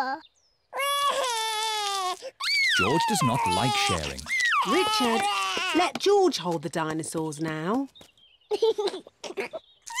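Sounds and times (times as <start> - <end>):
cartoon toddler crying: 0.8 - 6.0, 9.3 - 10.0.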